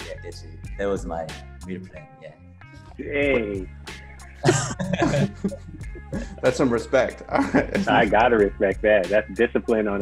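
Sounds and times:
soft background music: 0:00.0 - 0:10.0
man laughing: 0:04.4 - 0:09.6.

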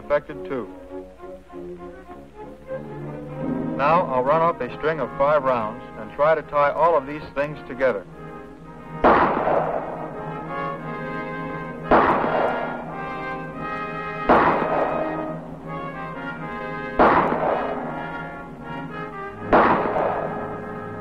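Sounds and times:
brass film score: 0:00.0 - 0:21.0
pistol shots echoing: 0:08.9 - 0:21.0.

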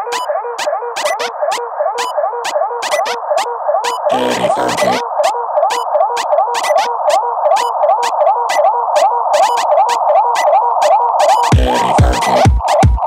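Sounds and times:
repeating synth riff: 0:00.0 - 0:13.0.

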